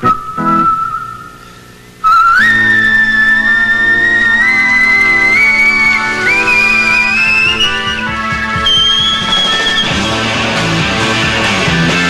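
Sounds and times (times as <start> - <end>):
man whistling melody: 0.0 - 10.1
organ chords: 0.0 - 12.0
rock band playing: 6.0 - 12.0.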